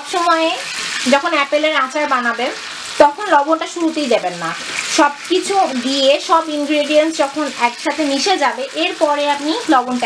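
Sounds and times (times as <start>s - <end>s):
apple chunks sizzling in hot oil: 0.0s - 10.0s
person talking: 0.0s - 10.0s.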